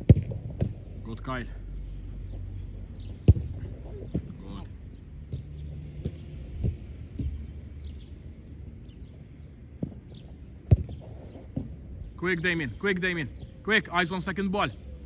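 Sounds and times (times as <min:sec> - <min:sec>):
football being kicked: 0:00.0 - 0:00.9, 0:03.1 - 0:04.4, 0:10.7 - 0:11.8.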